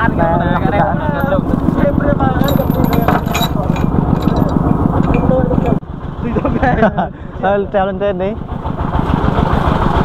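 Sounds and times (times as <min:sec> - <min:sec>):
diesel engine knocking: 0:07.6 - 0:10.0.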